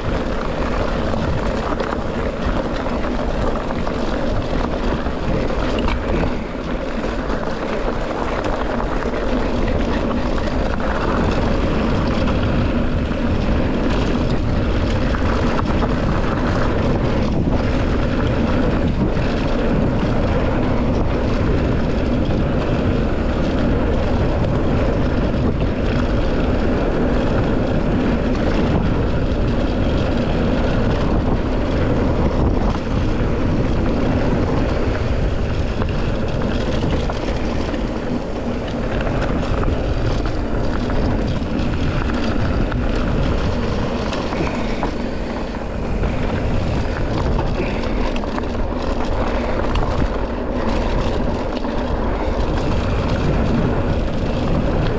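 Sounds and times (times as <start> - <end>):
bike tyres rumbling on dirt: 0.0 - 54.9
wind buffeting microphone: 0.0 - 54.9.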